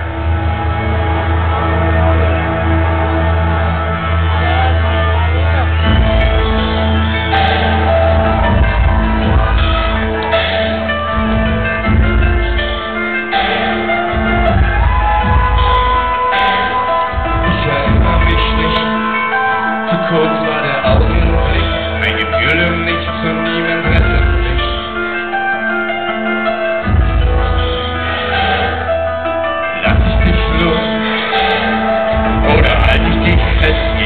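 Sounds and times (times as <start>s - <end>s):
pounding bass beat: 0.0s - 19.9s, 20.6s - 23.0s, 23.7s - 25.2s, 26.8s - 29.0s, 29.8s - 34.0s
crowd shouting: 0.0s - 22.0s
live band music through pa: 0.0s - 34.0s.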